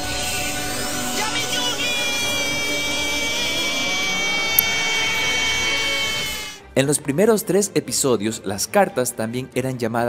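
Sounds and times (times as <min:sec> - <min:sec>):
electronic whine rising: 0:00.0 - 0:06.6.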